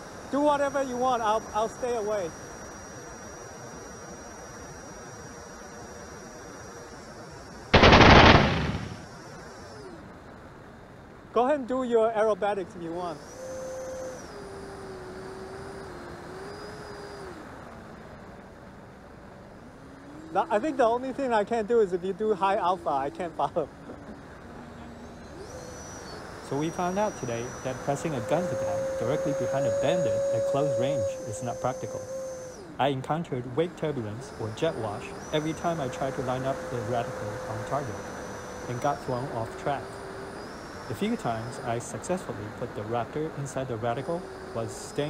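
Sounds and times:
faint background noise with whine: 0.0s - 45.0s
machine-gun burst: 7.8s - 9.0s.

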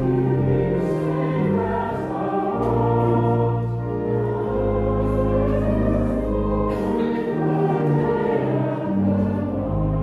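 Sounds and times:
congregation singing a hymn: 0.0s - 10.0s
low sustained accompaniment: 0.0s - 10.0s.

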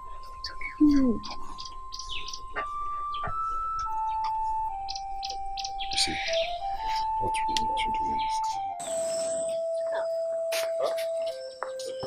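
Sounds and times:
high bird chirps: 0.0s - 12.0s
slow background music: 0.0s - 12.0s.

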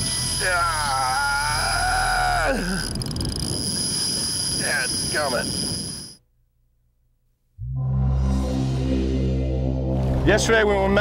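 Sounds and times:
low rumble: 7.6s - 11.0s.

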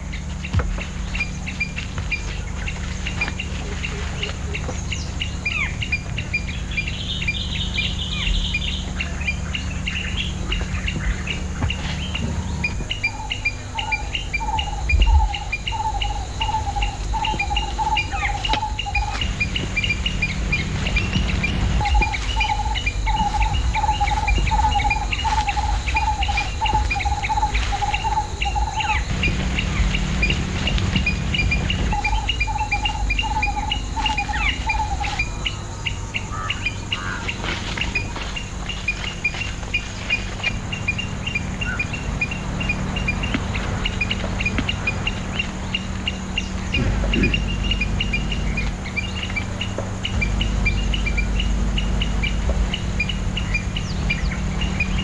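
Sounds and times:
birds and insects chirping: 0.0s - 55.0s
low steady drone: 0.0s - 55.0s
repeated rapid animal call: 0.0s - 55.0s.

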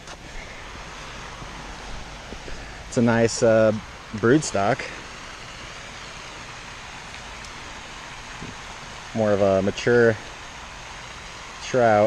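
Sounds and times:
flowing water rushing: 0.0s - 12.0s.

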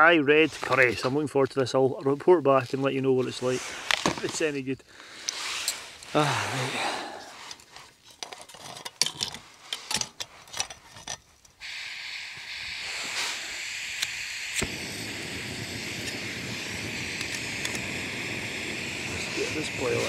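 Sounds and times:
escaping gas hissing: 4.9s - 7.6s, 11.6s - 20.0s
stove burner roaring: 11.6s - 20.0s
stove igniter click: 17.0s - 18.0s
gas canister screwing clicks: 17.2s - 17.9s.

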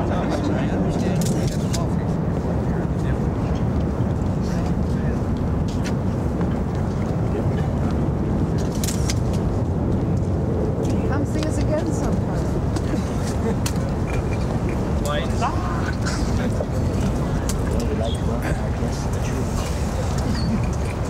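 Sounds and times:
low rumble: 0.0s - 17.8s.

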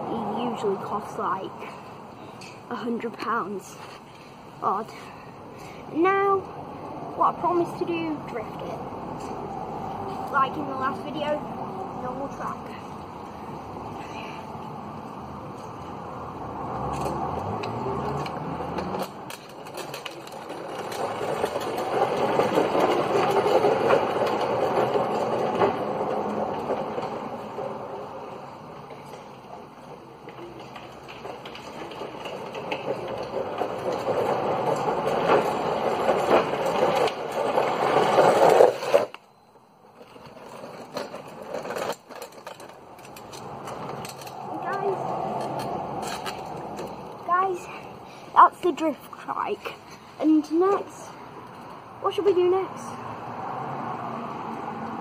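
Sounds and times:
plastic wheels skidding on tarmac: 15.5s - 52.3s.

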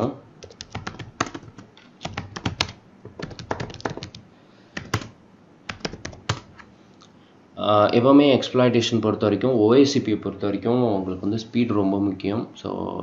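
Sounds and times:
computer keyboard typing: 0.4s - 4.2s, 4.8s - 6.7s.

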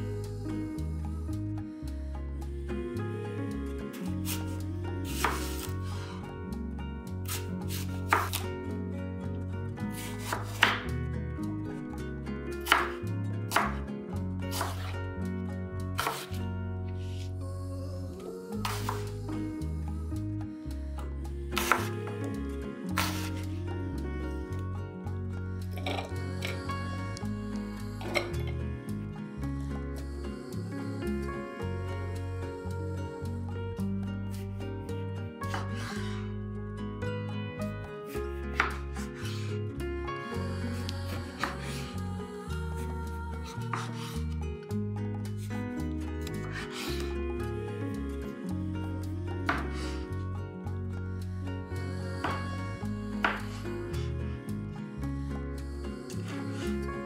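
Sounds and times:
background music: 0.0s - 57.0s
knife slicing apple: 4.2s - 5.9s, 7.2s - 8.5s, 9.9s - 10.9s, 12.6s - 13.8s, 14.5s - 15.0s, 16.0s - 16.4s, 21.6s - 22.0s, 22.9s - 23.6s, 38.5s - 39.5s, 43.5s - 44.3s, 53.2s - 53.6s
knife striking wooden cutting board: 5.2s - 5.7s, 8.1s - 8.4s, 10.2s - 10.9s, 12.6s - 13.8s, 16.0s - 16.4s, 38.6s - 39.4s, 53.2s - 53.5s.

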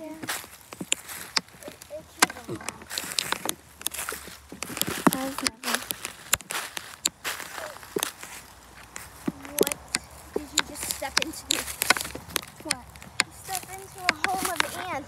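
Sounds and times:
footsteps in dry leaves: 0.0s - 15.0s
twigs snapping: 0.0s - 15.0s
person vocal sounds: 1.6s - 3.5s, 9.2s - 15.0s.

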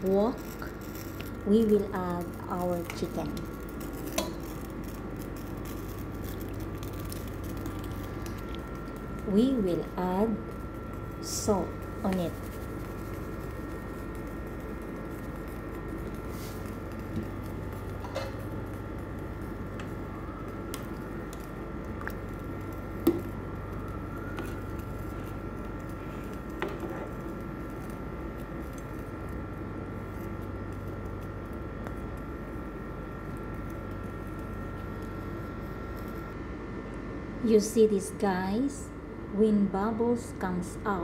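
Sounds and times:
background hum: 0.0s - 41.0s.

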